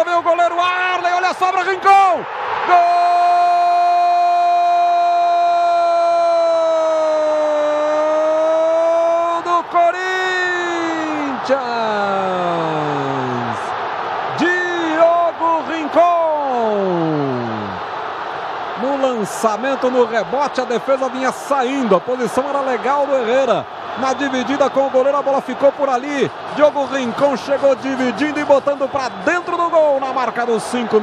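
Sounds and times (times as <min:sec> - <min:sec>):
stadium crowd noise: 0:00.0 - 0:31.0.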